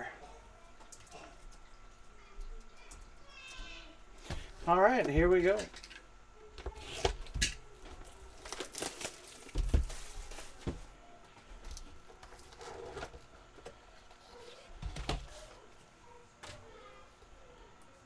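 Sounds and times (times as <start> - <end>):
plastic wrap crinkling and tearing: 7.8 - 10.8.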